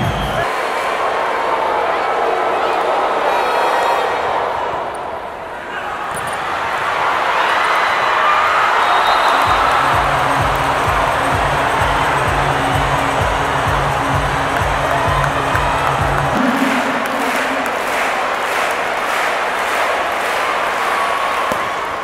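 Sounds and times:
crowd hum: 8.8 - 22.0
crowd clapping in unison: 9.0 - 22.0
loud music with heavy beat: 9.5 - 18.1.

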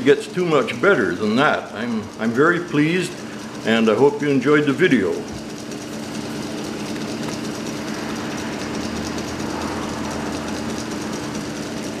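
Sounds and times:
chain drive mechanical clatter: 0.0 - 12.0
small electric motor humming: 0.0 - 12.0.

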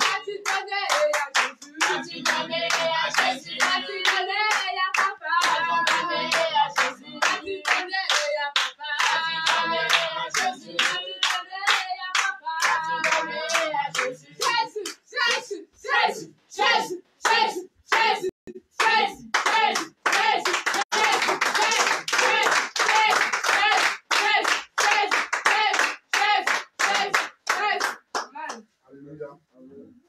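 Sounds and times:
voices singing and calling out: 0.0 - 27.8
group clapping in rhythm: 0.0 - 28.7.

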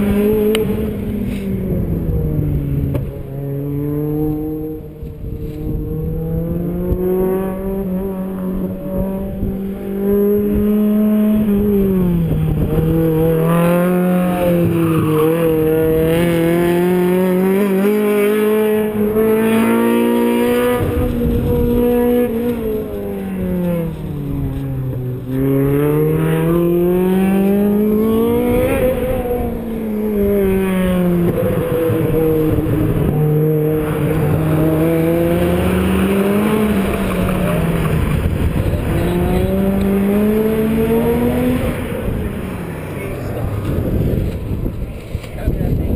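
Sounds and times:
car engine revving and braking: 0.0 - 45.8.

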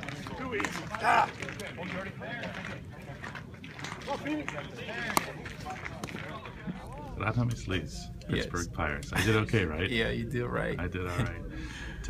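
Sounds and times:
distant voices: 0.0 - 12.0.

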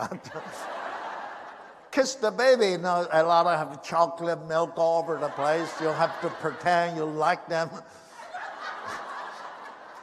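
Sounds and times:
audience laughing: 0.0 - 2.4, 4.7 - 10.0.

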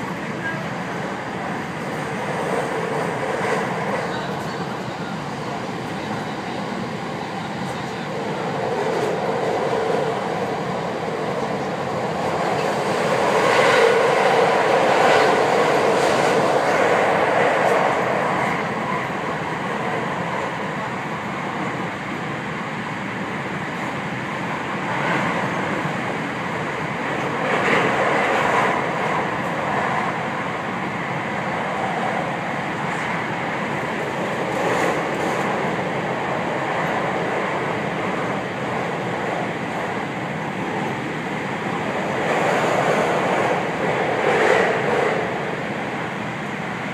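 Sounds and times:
train rail rumble inside cabin: 0.0 - 46.9.

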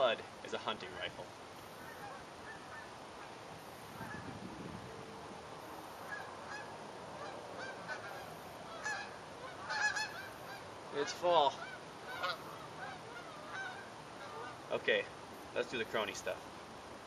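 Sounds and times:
geese honking: 1.7 - 3.3, 6.0 - 14.7.

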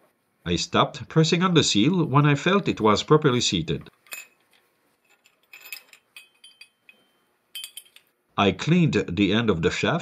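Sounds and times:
metallic clinks of hand tool: 5.1 - 8.1.

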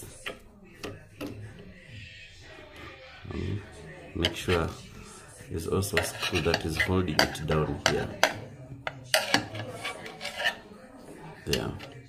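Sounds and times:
screwdriver scraping on sheet metal: 4.2 - 4.9, 5.7 - 10.7.

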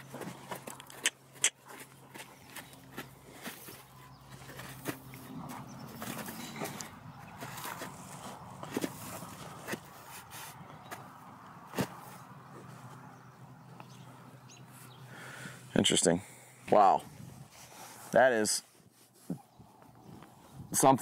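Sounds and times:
horse hooves stepping in sand: 0.0 - 13.1.

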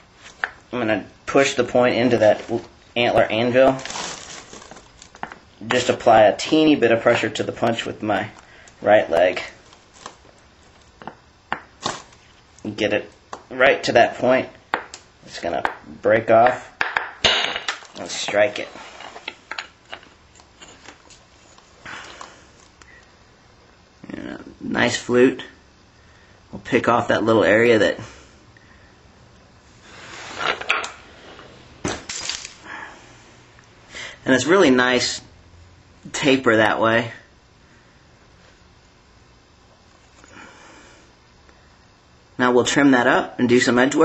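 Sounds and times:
rustle of handling: 3.6 - 5.2.

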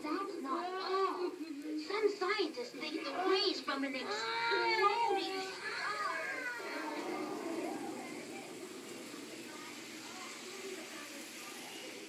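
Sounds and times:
children talking and calling out: 0.0 - 12.0
murmur of voices: 0.0 - 12.0.

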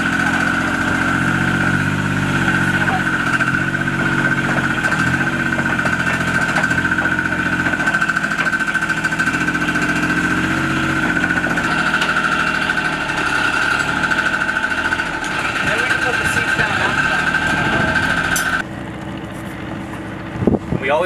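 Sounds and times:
utility vehicle engine running: 0.0 - 21.0.

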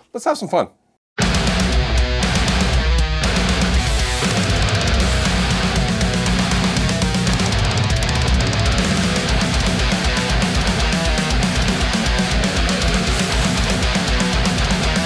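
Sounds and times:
distorted electric guitar riff: 1.2 - 15.0.

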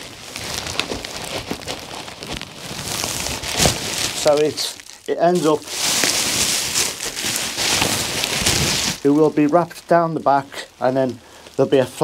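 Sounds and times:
bubble wrap rustling and crinkling: 0.0 - 12.0.

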